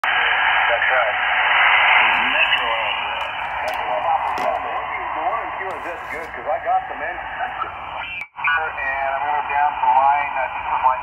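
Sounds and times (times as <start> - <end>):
radio band noise hiss: 0.1 - 11.0
faint warbling radio voice: 1.9 - 11.0.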